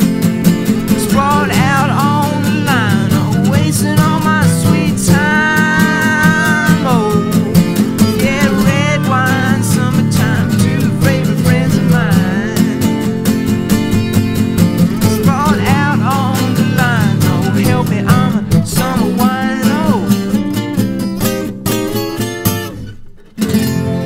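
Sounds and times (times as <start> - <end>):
sliding lead guitar lines: 0.0 - 24.0
strummed acoustic guitar: 0.0 - 24.0.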